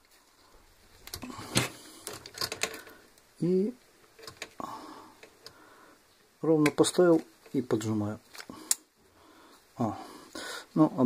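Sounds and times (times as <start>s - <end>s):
metal rivet parts clicking: 1.0s - 3.0s, 4.1s - 4.6s.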